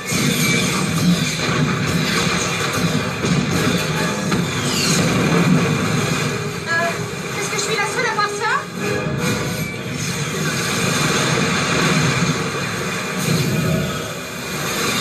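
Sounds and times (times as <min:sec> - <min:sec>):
loud action film music: 0:00.0 - 0:15.0.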